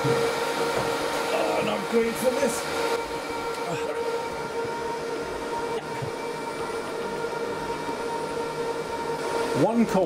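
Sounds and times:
server cooling fans whining: 0.0s - 10.0s.

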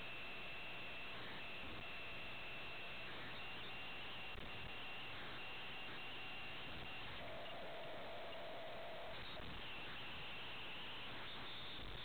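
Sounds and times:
faint steady tone: 0.0s - 12.0s
radio receiver hiss: 0.0s - 12.0s.

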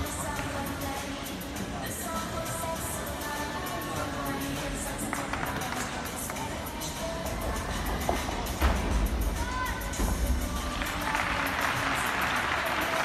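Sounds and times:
background music: 0.0s - 13.0s
crowd murmur and voices: 0.0s - 13.0s.

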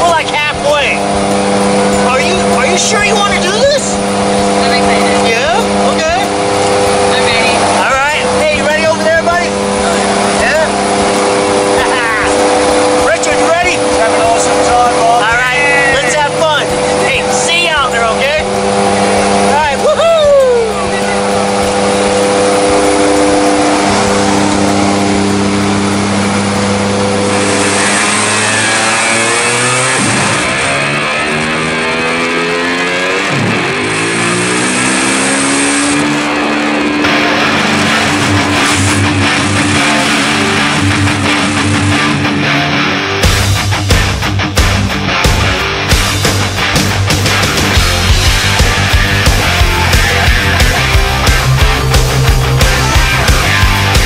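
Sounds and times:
plane engines and propellers droning: 0.0s - 43.8s
people calling and whooping: 15.1s - 17.7s, 19.4s - 21.8s.

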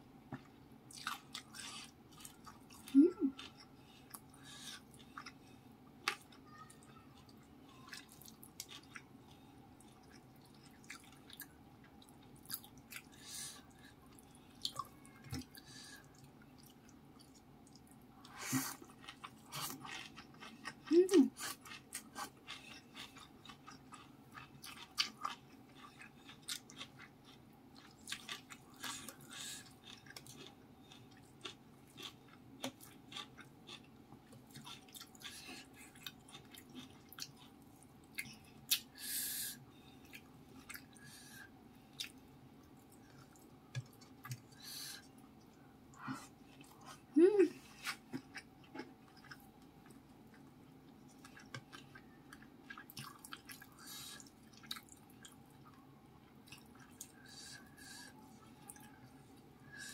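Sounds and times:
faint steady hum: 0.0s - 59.9s
person humming: 2.9s - 3.4s, 47.2s - 47.6s
chewing and lip smacks: 7.2s - 9.1s, 14.1s - 38.9s, 41.9s - 47.0s, 47.8s - 57.7s.

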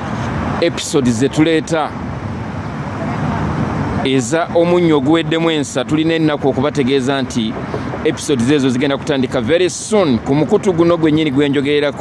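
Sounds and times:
city street traffic: 0.0s - 12.0s.

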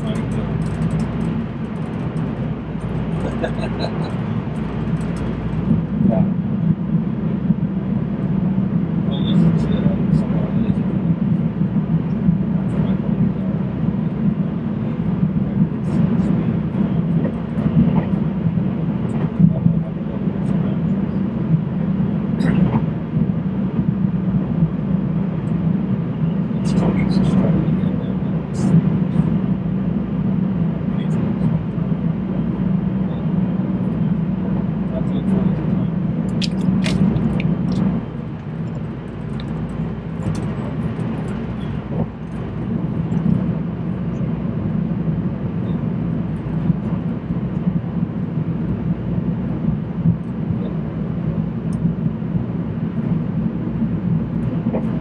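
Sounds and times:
train rumble: 0.0s - 55.0s
people's voices: 3.1s - 4.3s.

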